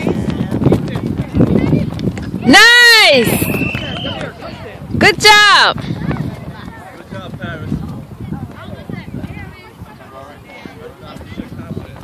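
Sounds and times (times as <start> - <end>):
chatter of voices: 0.0 - 12.0.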